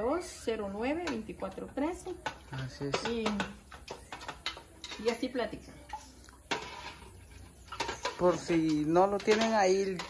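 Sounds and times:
metal utensil clinking on a pot: 0.7 - 10.0.

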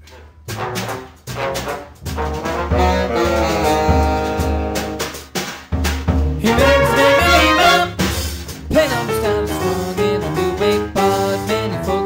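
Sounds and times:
big band jazz with brass: 0.0 - 12.0.

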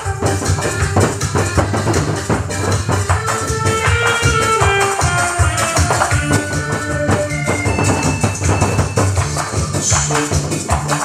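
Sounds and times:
barrel drums beaten with sticks: 0.0 - 4.8, 5.6 - 11.0
jingling percussion: 0.0 - 11.0
recorded music with steady beat: 0.0 - 11.0.

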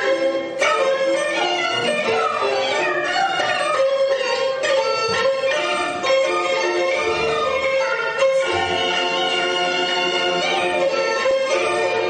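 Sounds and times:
woman singing opera: 1.4 - 6.0, 6.9 - 11.2.

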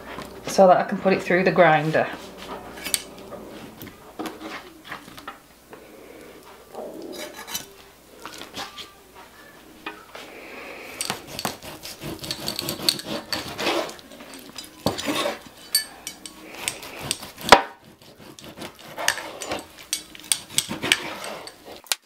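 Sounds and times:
knife scraping and knocking on board: 11.0 - 15.9, 16.6 - 22.0.

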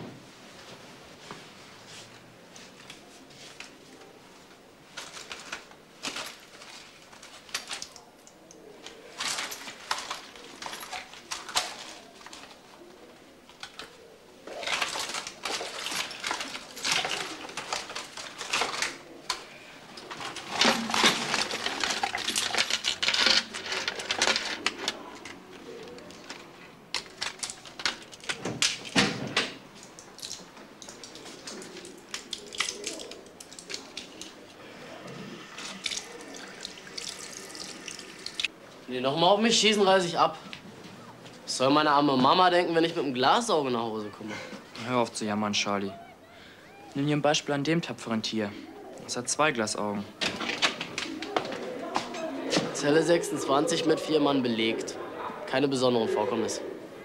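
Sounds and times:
rummaging through handbag: 4.9 - 29.0.

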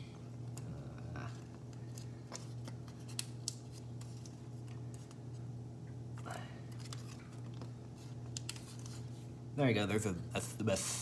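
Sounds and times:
steady low hum: 0.0 - 11.0
paper crinkling and crackling: 6.7 - 9.3.

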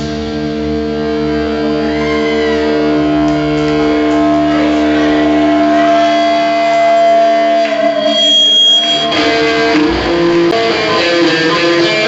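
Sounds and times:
electric guitar sustained chord: 0.0 - 12.0.

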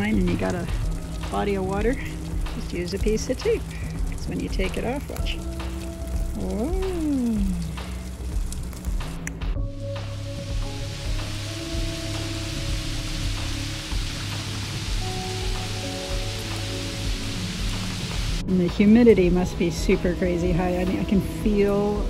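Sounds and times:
background music with held notes: 0.0 - 22.0
rain falling: 0.0 - 22.0.

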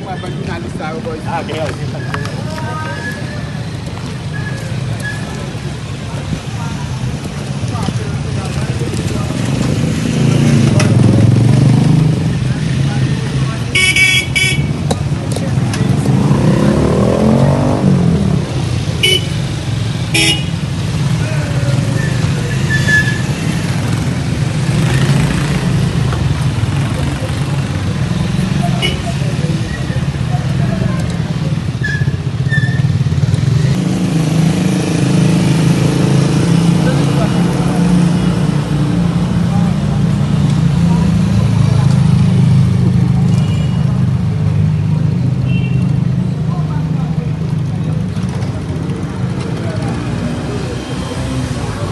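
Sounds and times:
motorcycle engines running: 0.0 - 51.9
motorcycle engine revving: 6.9 - 51.9
horn toots: 13.7 - 14.8, 19.0 - 19.5, 20.1 - 20.6.

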